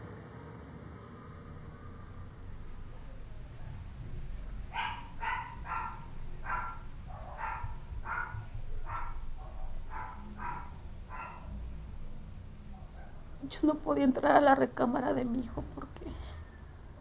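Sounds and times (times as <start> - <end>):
low background rumble: 1.0 - 17.0
dog barking: 4.6 - 11.7, 12.6 - 13.4.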